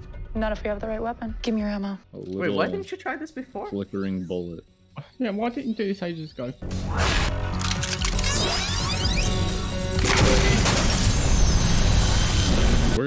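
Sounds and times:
sci-fi sound effects: 2.4s - 13.0s
loud crash and shattering: 10.0s - 13.0s.

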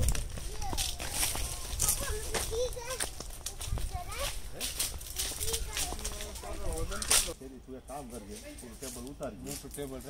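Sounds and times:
footsteps crunching on dry leaves: 0.0s - 7.4s, 8.0s - 10.0s
voices: 0.0s - 10.0s.

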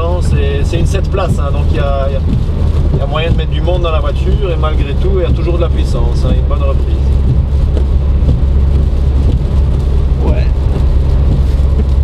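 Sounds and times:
diesel car engine drone: 0.0s - 12.0s
tyre noise on wet road: 0.0s - 12.0s.

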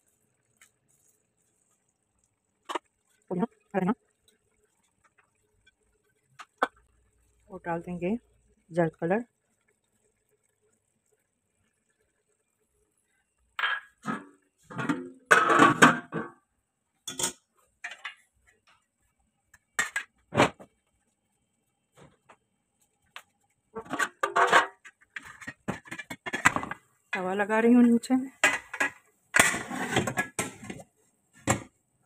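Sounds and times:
metal lid clanking on pot: 13.6s - 16.4s, 17.1s - 18.2s, 23.8s - 26.8s, 28.4s - 30.8s.

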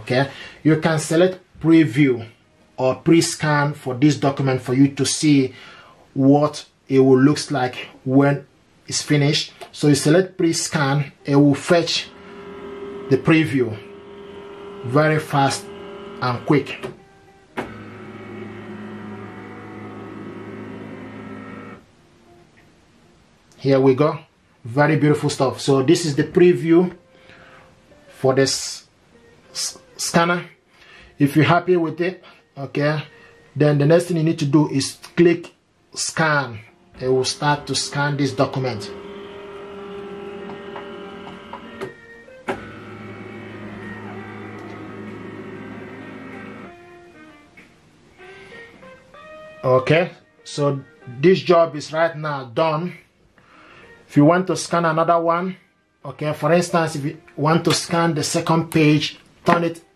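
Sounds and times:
scanner motor whine: 11.9s - 16.7s, 17.6s - 21.8s, 37.3s - 46.7s.

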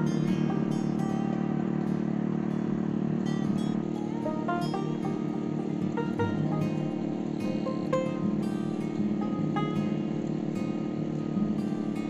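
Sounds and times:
garden tiller engine running: 0.0s - 12.0s
plucked string music: 0.0s - 12.0s.

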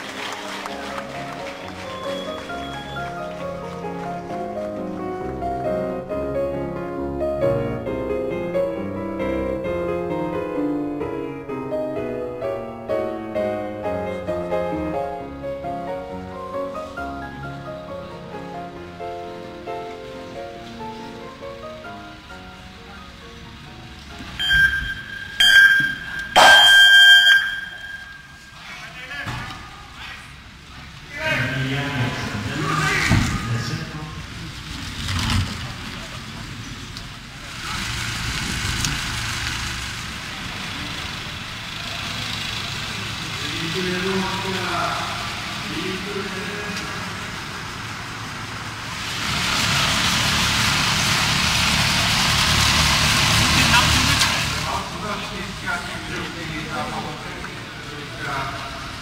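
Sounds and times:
electronic start-clock beeps: 24.4s - 28.5s
voices: 40.3s - 47.7s.

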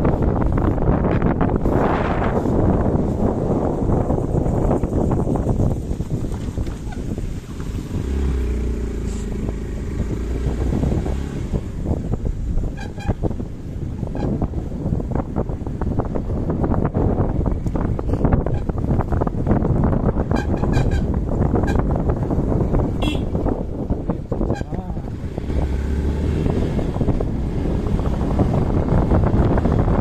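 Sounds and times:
motorcycle engine running: 0.0s - 30.0s
wind noise: 0.0s - 30.0s
horn toots: 12.6s - 13.3s, 20.2s - 22.0s, 23.0s - 23.6s.

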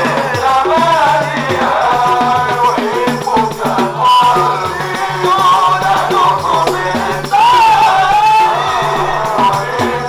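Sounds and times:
group singing: 0.0s - 10.0s
lead voice singing on microphone: 0.0s - 10.0s
rhythmic percussion: 0.0s - 10.0s.

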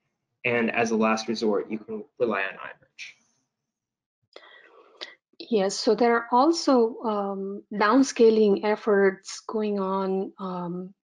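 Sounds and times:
person speaking: 0.5s - 2.7s, 5.4s - 10.8s.

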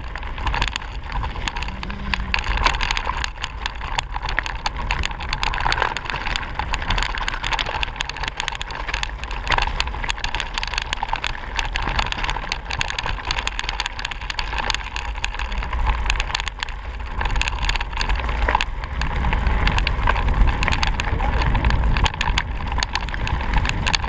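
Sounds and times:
low rumble: 0.0s - 10.0s, 14.8s - 24.0s
bike rattling over stones: 0.0s - 24.0s.

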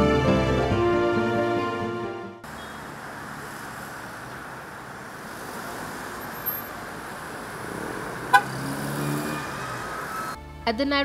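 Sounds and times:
cars driving past: 2.4s - 10.6s.

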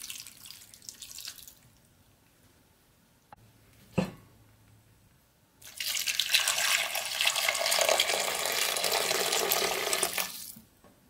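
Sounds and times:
water pouring into a steel pot: 5.6s - 10.6s.

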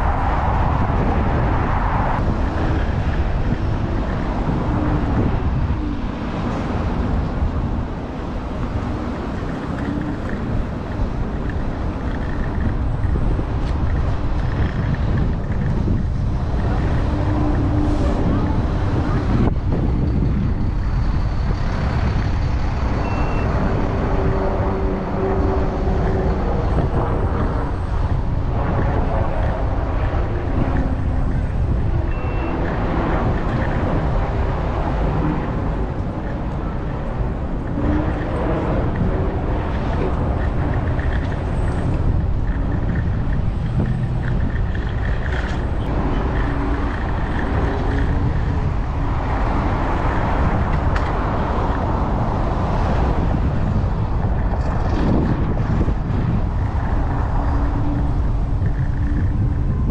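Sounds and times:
street traffic: 0.0s - 59.9s
wind noise on microphone: 0.0s - 59.9s.

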